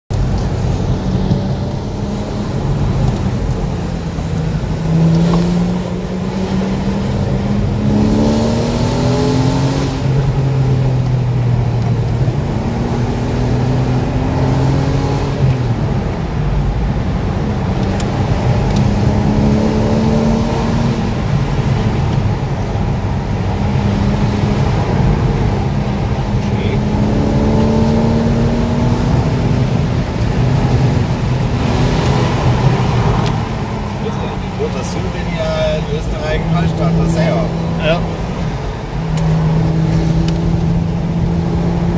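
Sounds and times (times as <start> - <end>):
car engine accelerating: 0.1 - 41.9.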